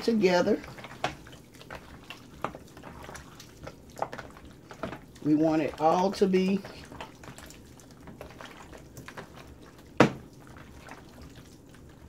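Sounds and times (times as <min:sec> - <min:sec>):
hands squishing raw meat: 0:00.0 - 0:12.0.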